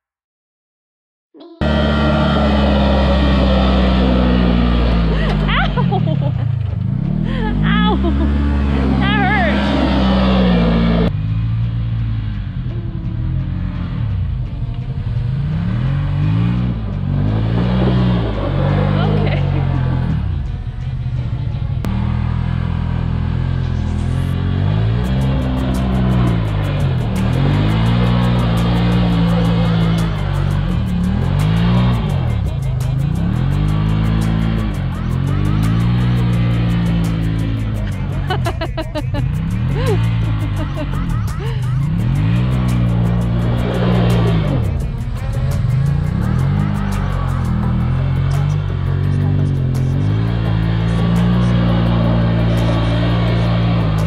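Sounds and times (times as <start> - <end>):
utility vehicle engines revving: 1.4 - 54.0.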